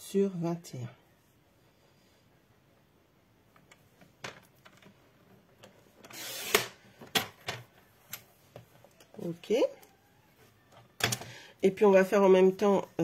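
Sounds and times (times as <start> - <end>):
paper trimmer blade scraping: 6.1 - 6.7.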